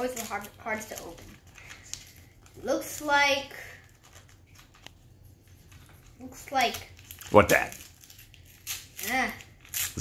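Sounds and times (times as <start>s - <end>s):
fingers picking at wrapping paper: 0.0s - 10.0s.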